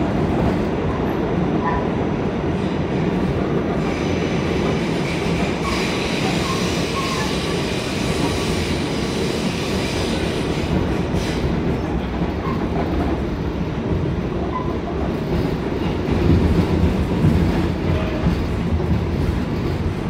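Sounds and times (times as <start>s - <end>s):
subway train wheels rumbling: 0.0s - 20.0s.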